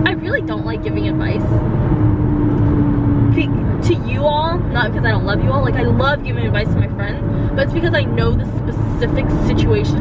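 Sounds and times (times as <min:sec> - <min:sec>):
road and engine noise in car: 0:00.0 - 0:10.0
steady low hum: 0:00.0 - 0:10.0.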